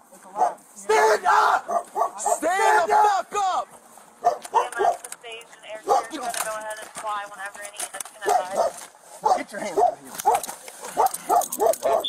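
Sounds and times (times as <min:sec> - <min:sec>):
dog barking: 0:00.4 - 0:02.5, 0:04.2 - 0:05.0, 0:05.8 - 0:06.2, 0:08.2 - 0:12.0.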